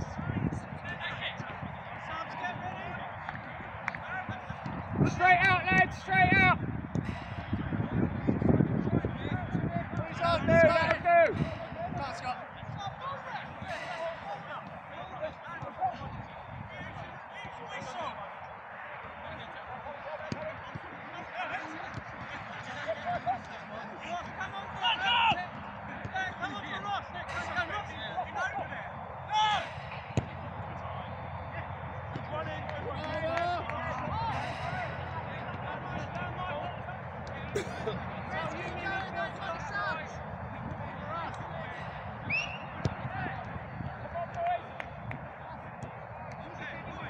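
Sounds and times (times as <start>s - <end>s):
footballers shouting: 0.0s - 47.0s
football being kicked: 29.8s - 30.6s.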